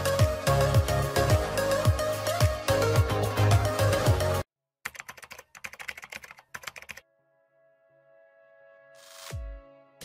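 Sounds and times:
computer keyboard typing: 4.8 - 7.0.

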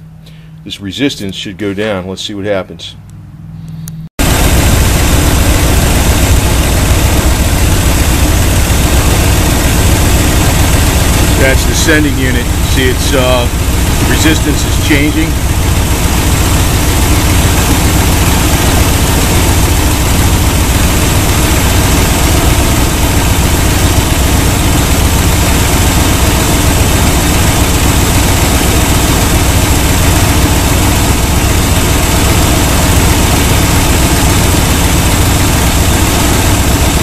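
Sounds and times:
car engine idling: 3.0 - 37.0.

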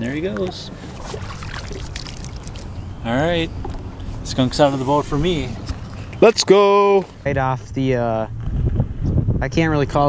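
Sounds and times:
water lapping against boat: 0.0 - 7.2.

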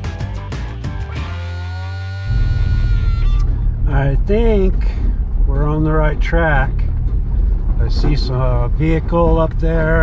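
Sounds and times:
guitar music: 0.0 - 5.5
pickup truck rumbling on dirt road: 0.6 - 10.0.

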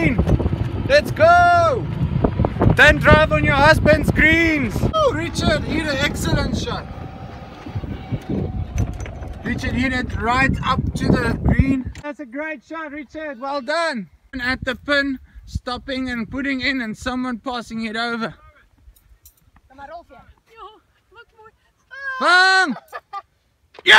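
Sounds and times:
golf cart rumble with jolts: 0.0 - 12.0.

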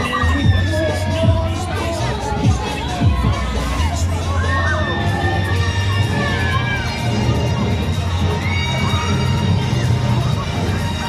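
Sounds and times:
riders screaming: 0.0 - 1.4, 8.3 - 9.9
heavy bass music: 0.0 - 11.0.

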